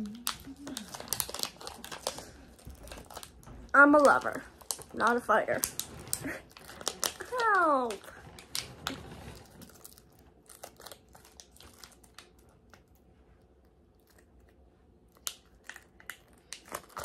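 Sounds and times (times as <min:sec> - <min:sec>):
plastic packaging crinkling: 0:00.0 - 0:14.4, 0:15.1 - 0:17.0.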